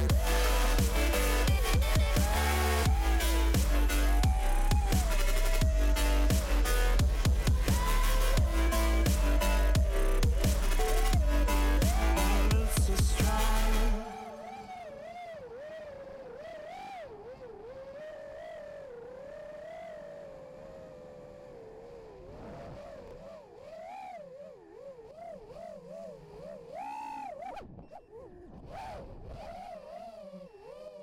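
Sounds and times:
drone motors whining: 0:00.0 - 0:31.0.

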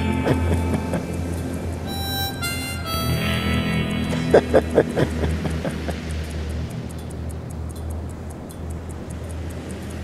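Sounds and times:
low sustained drone: 0:00.0 - 0:06.7
faint ticking: 0:00.0 - 0:10.0.

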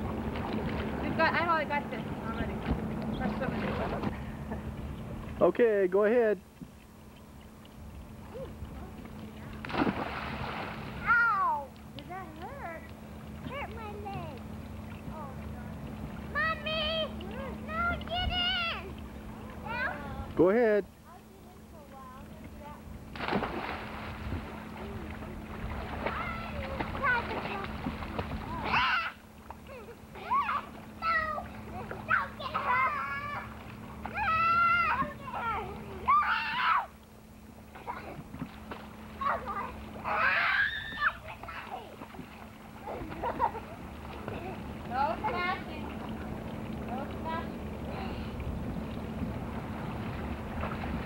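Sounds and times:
steady low hum: 0:00.0 - 0:51.0
water sloshing: 0:00.0 - 0:51.0
splash into pool: 0:09.6 - 0:11.5, 0:23.1 - 0:29.2
children's voices: 0:16.3 - 0:19.0, 0:19.6 - 0:20.3, 0:28.4 - 0:36.9.

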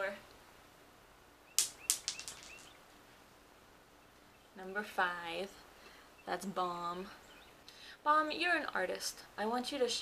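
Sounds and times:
plastic die bouncing on floor: 0:01.6 - 0:02.8.

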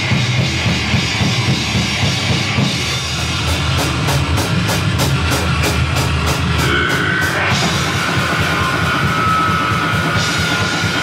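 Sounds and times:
distorted guitar and bass: 0:00.0 - 0:11.0
fast drumming: 0:00.0 - 0:11.0.

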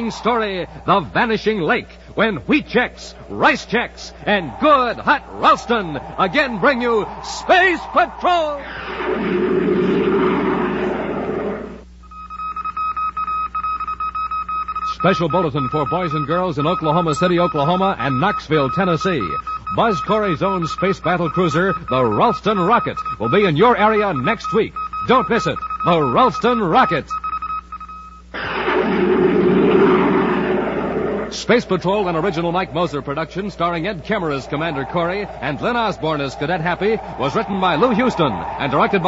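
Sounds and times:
loud rushing noise: 0:03.2 - 0:10.1
rocket blast roar: 0:04.2 - 0:11.8, 0:28.4 - 0:31.3
morse code beeping: 0:12.0 - 0:28.3.

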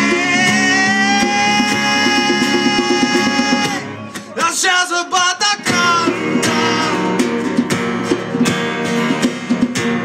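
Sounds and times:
hand drumming on djembe: 0:00.0 - 0:04.4, 0:05.6 - 0:10.0.

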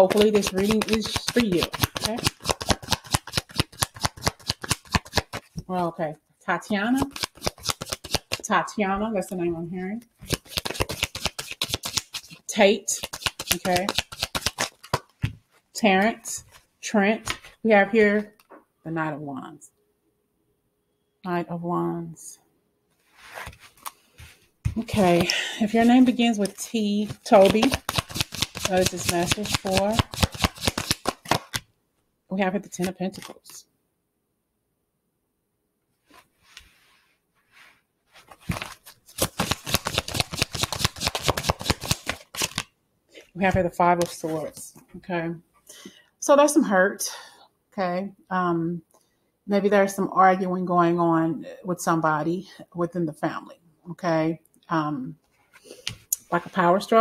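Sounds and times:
cards being shuffled: 0:00.0 - 0:05.7, 0:06.7 - 0:08.6, 0:10.1 - 0:15.6, 0:17.2 - 0:17.6, 0:23.2 - 0:31.7, 0:32.8 - 0:33.6, 0:38.1 - 0:42.7, 0:43.4 - 0:44.8.

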